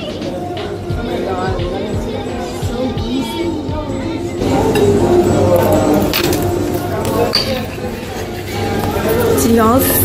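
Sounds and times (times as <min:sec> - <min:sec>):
background music: 0:00.0 - 0:10.0
voices: 0:00.0 - 0:10.0.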